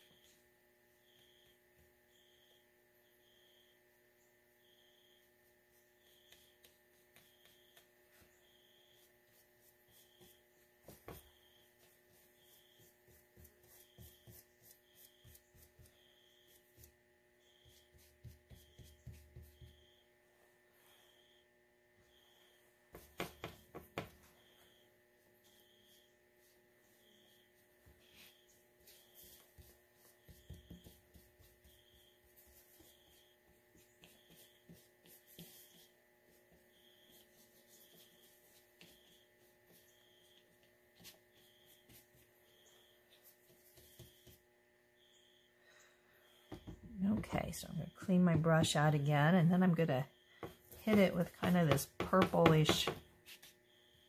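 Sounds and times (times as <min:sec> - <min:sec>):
faint room hum: 0:00.0 - 0:54.0
paintbrush scratching on paper: 0:04.6 - 0:20.0, 0:22.4 - 0:44.4, 0:50.6 - 0:53.7.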